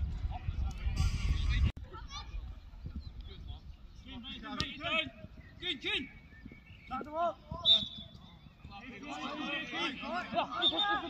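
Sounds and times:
people shouting: 8.8s - 11.0s.

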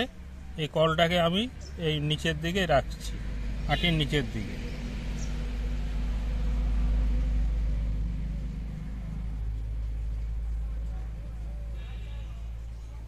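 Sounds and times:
motor vehicle engine rumbling past: 0.0s - 13.0s.

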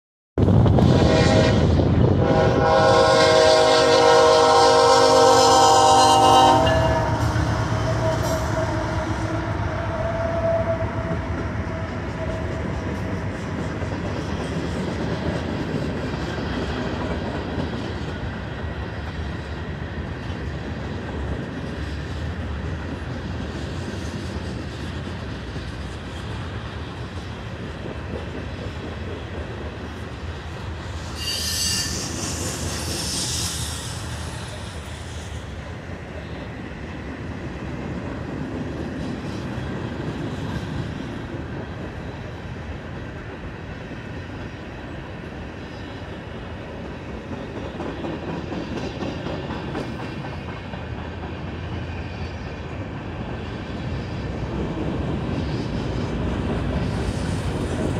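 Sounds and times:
freight cars rumbling past: 0.4s - 18.9s
locomotive air horn: 0.7s - 12.9s, 31.2s - 33.2s
wheels clattering on rails: 46.7s - 53.4s.

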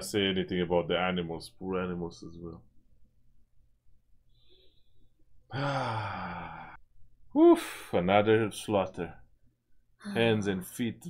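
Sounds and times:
man sighing: 5.5s - 6.8s.

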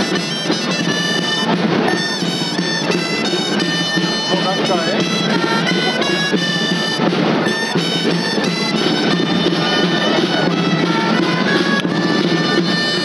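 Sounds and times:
shawm playing fast folk tune: 0.0s - 13.0s
steady drum beat: 0.0s - 13.0s.

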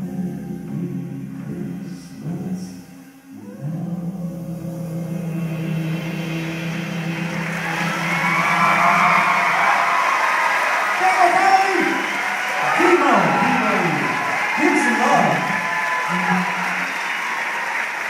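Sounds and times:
live band holding a long note: 0.0s - 18.0s
audience applause and cheering: 5.3s - 18.0s.

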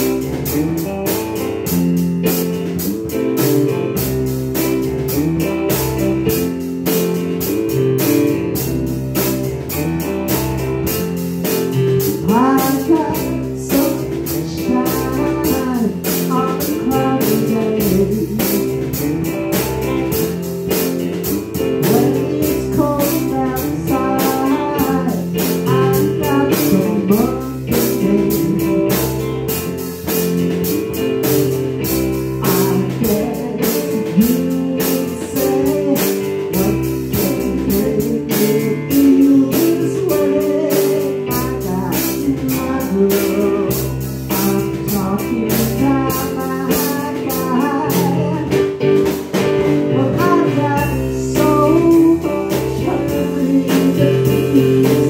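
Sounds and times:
drum kit beat: 0.0s - 55.0s
electric guitar: 0.0s - 55.0s
man singing: 11.8s - 20.2s, 21.8s - 29.6s, 30.6s - 48.8s, 49.8s - 55.0s.

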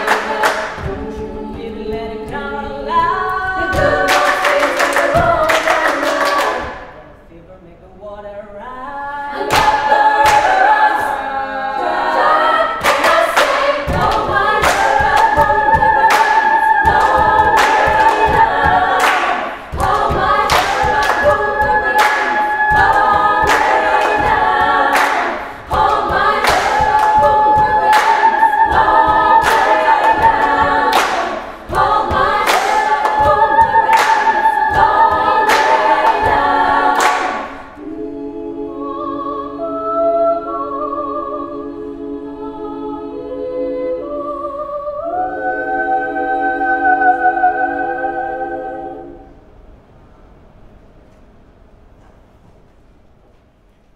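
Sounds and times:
female choir singing: 0.0s - 7.3s, 8.0s - 49.5s.

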